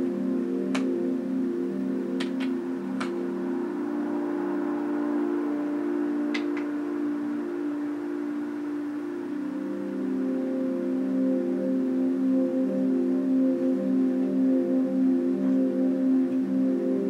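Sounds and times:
ambient drone music: 0:00.0 - 0:17.0.

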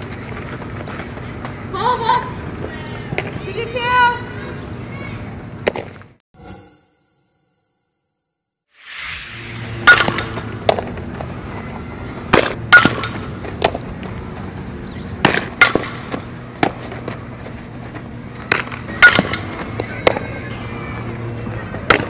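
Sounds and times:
low hum: 0:08.8 - 0:12.3.

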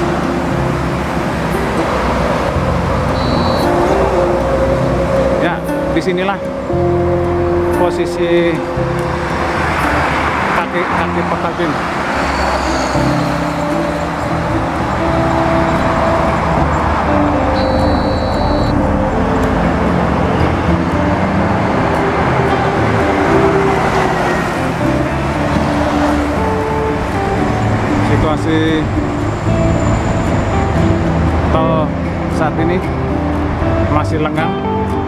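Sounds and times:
background music of held notes: 0:00.0 - 0:35.0
passing cars and trucks: 0:00.0 - 0:35.0.

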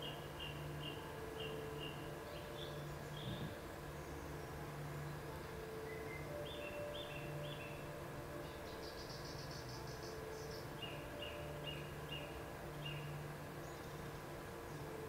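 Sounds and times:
faint bird chirping: 0:00.0 - 0:15.0
low room hum: 0:00.0 - 0:15.0.

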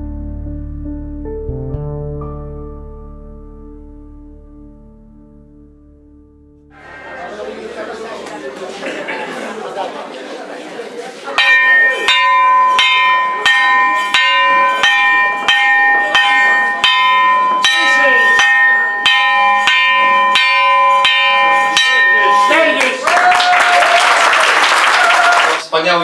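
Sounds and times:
mallet striking ringing metal plate: 0:11.4 - 0:23.0
audience applauding: 0:22.5 - 0:25.7.

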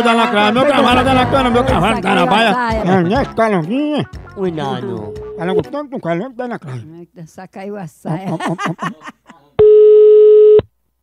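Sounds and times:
low-pitched telephone beep: 0:05.0 - 0:05.6, 0:09.6 - 0:10.7.

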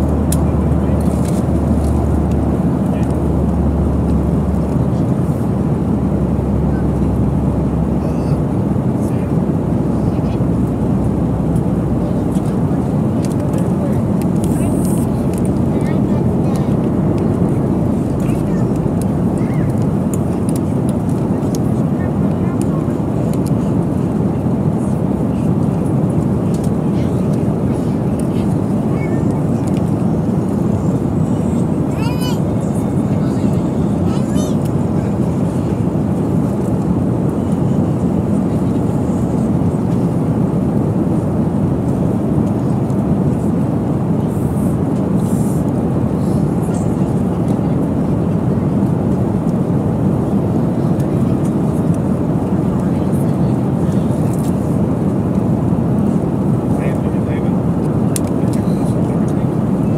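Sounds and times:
airliner cabin engine noise: 0:00.0 - 0:59.9.

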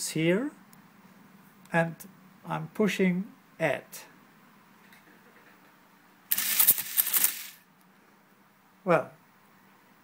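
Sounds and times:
electromechanical calculator clattering: 0:06.3 - 0:07.6.

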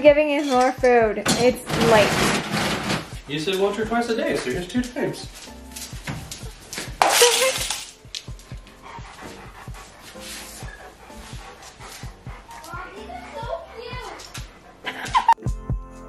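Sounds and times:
background music with steady beat: 0:00.0 - 0:16.0
metal bowl clattering on tile: 0:06.8 - 0:08.0
dog vocalising: 0:08.3 - 0:15.4.

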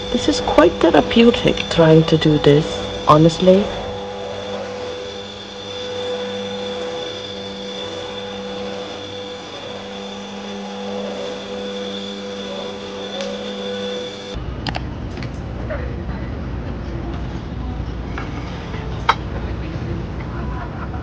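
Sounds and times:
stick vacuum cleaner running: 0:00.0 - 0:15.8.

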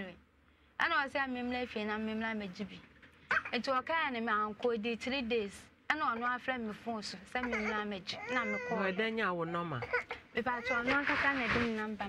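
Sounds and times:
woman talking: 0:00.0 - 0:00.2, 0:00.8 - 0:09.4, 0:10.0 - 0:12.0.

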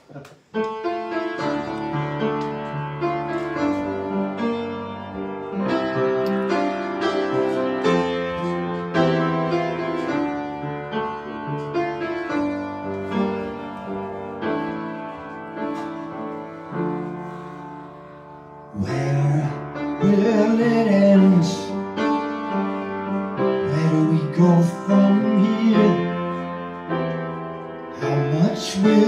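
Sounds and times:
piano chords: 0:00.0 - 0:29.0.

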